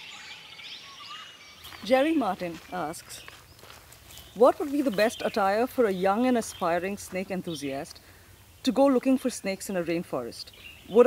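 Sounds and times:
birds chirping: 0.0s - 11.0s
faint outdoor hum: 0.0s - 11.0s.

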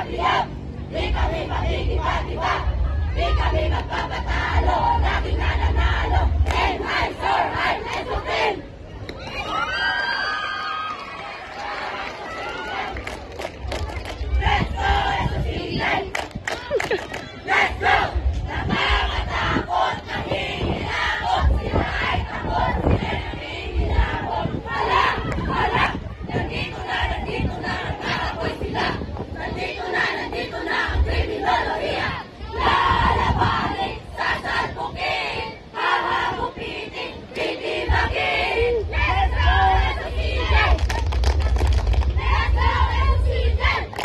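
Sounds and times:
steady low rumble: 0.0s - 9.4s, 11.3s - 44.0s
crowd voices: 0.0s - 44.0s.

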